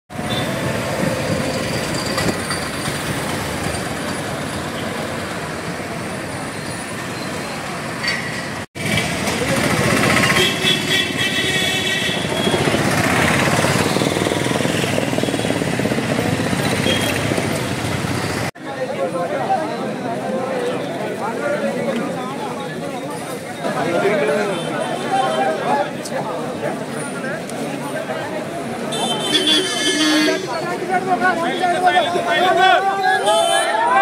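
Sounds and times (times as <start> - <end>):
truck engines running: 0.1 - 19.2
people's voices: 18.6 - 34.0.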